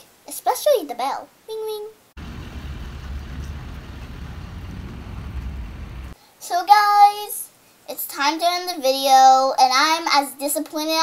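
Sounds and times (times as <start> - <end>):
outdoor hiss: 0.0 - 11.0
wind rumbling on microphone: 2.2 - 6.2.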